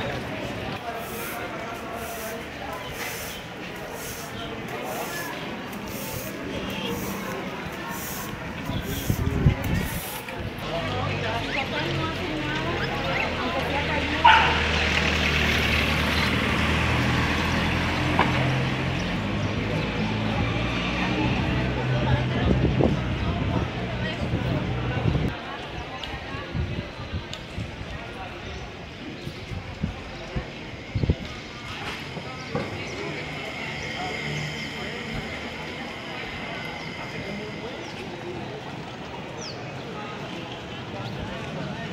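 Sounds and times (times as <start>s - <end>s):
low street background hum: 0.0s - 41.9s
people talking: 0.0s - 41.9s
dog barking: 14.2s - 14.6s.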